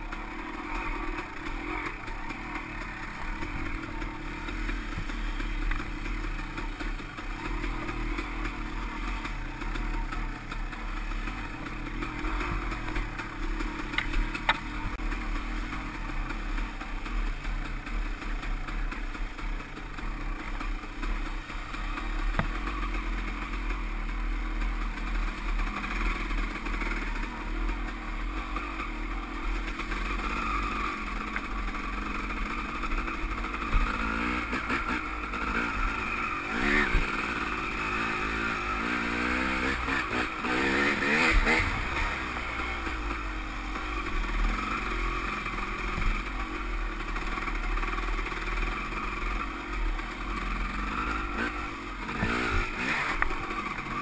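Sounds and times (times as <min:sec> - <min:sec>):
dirt bike engine revving: 0:00.0 - 0:54.0.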